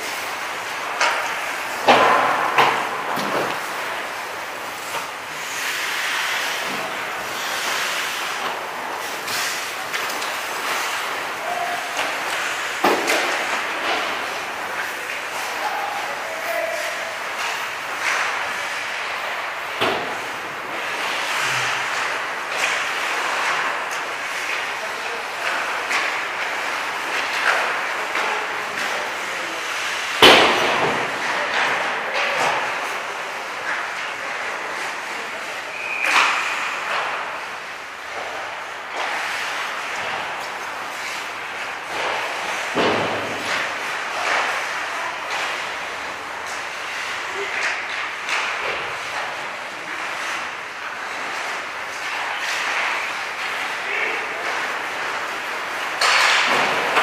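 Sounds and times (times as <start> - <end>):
pucks cracking off sticks: 0.0 - 57.0
skates scraping ice: 0.0 - 57.0.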